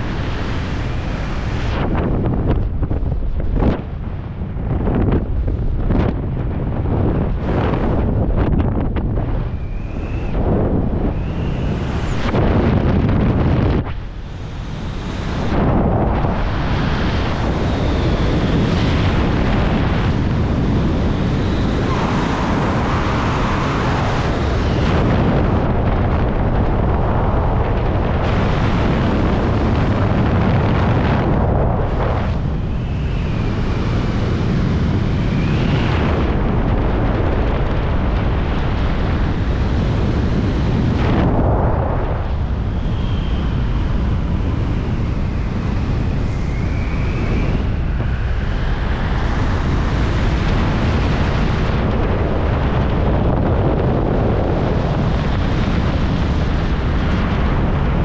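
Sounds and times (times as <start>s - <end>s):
wind buffeting microphone: 0.0s - 58.0s
faint whistling: 9.6s - 10.4s, 46.3s - 47.7s.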